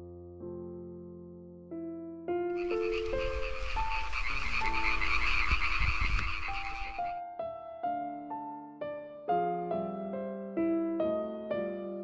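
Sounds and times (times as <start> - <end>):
soft piano music: 0.0 - 12.0
frogs calling in chorus: 2.6 - 7.2.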